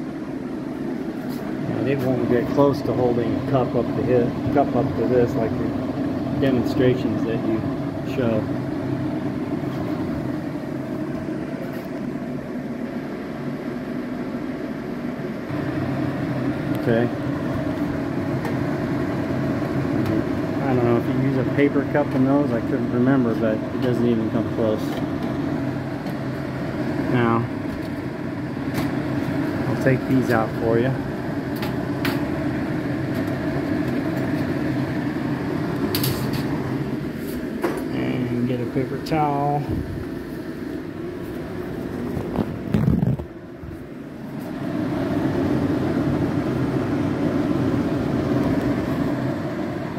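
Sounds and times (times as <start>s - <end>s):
range hood fans whirring: 0.0s - 49.9s.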